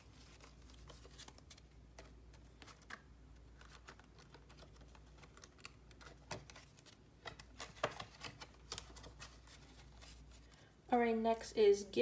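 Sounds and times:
paper banknotes rustling: 0:00.0 - 0:10.7
low room hum: 0:00.0 - 0:12.0.

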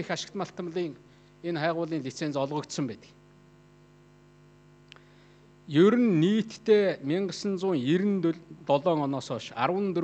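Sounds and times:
man speaking: 0:00.0 - 0:03.2, 0:05.7 - 0:10.0
faint mains hum: 0:00.0 - 0:10.0
small click: 0:04.8 - 0:05.1.

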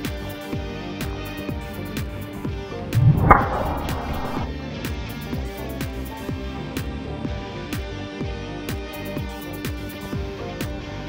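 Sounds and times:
golf club striking ball: 0:03.0 - 0:04.5.

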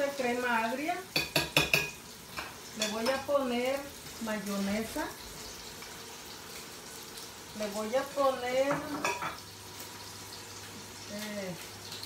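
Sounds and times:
fish sizzling in a skillet: 0:00.0 - 0:12.0.

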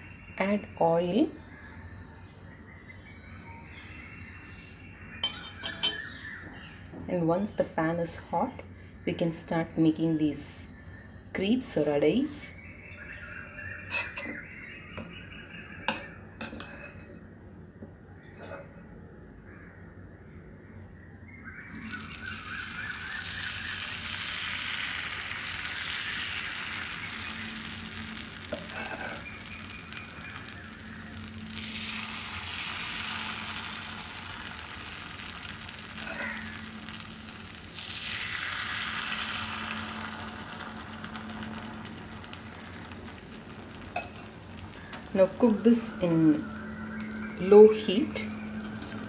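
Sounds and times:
batter sizzling on griddle: 0:21.5 - 0:49.0.

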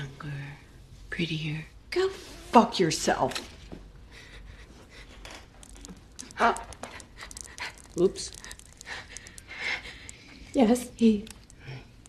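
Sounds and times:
woman panting and whimpering: 0:06.3 - 0:10.5.

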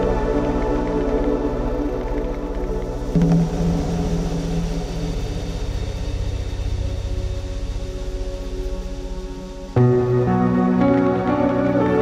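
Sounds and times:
suspenseful synth music: 0:00.0 - 0:12.0.

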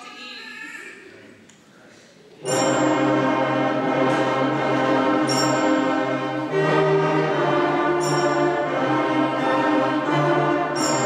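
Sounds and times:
concert band holding chords: 0:02.4 - 0:11.0.

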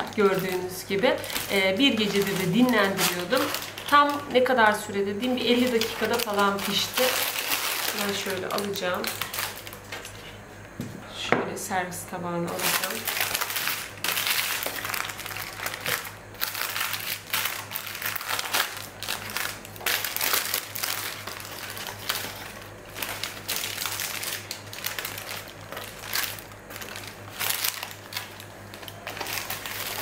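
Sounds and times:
baking paper crinkling: 0:00.0 - 0:10.4, 0:12.5 - 0:30.0.

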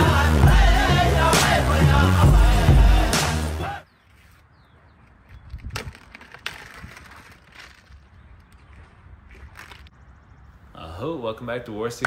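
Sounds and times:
intro music: 0:00.0 - 0:03.8
plastic wrapper crackling: 0:05.2 - 0:09.9.

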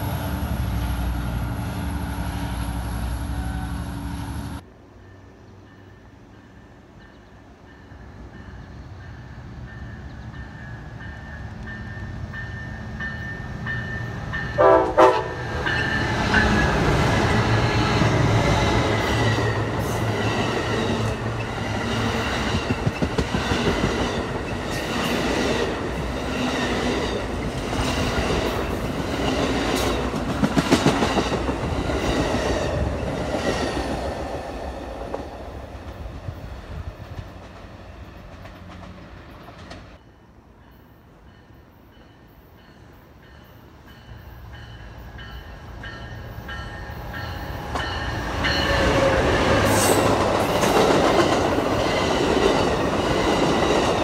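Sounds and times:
passing train rumble: 0:00.0 - 0:54.0
train horn blast: 0:14.5 - 0:15.7.

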